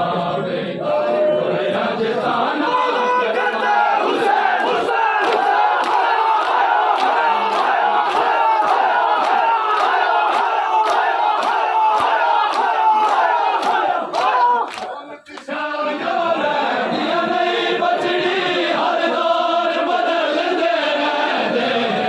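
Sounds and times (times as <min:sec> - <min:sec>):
crowd chanting: 0:00.0 - 0:22.0
rhythmic hand slaps on chest: 0:04.6 - 0:15.5.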